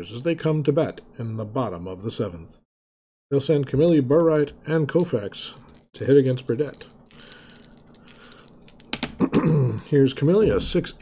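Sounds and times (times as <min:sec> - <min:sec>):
dice clicking on tabletop: 0:05.0 - 0:09.2.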